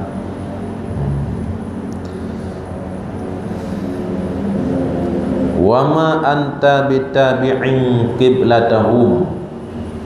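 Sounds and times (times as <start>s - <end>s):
low engine drone: 0.0s - 10.0s.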